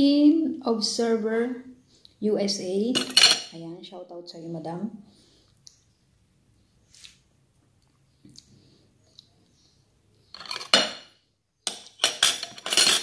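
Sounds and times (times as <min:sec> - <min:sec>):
metal spoon scraping ceramic bowl: 0:10.4 - 0:11.0, 0:11.7 - 0:13.0.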